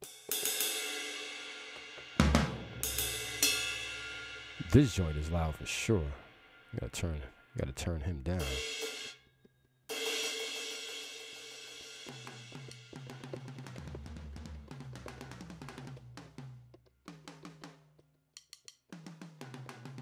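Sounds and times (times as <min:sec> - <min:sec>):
drum machine strikes: 0:01.7 - 0:07.3, 0:10.1 - 0:20.0
deep bass drum: 0:02.2 - 0:06.9.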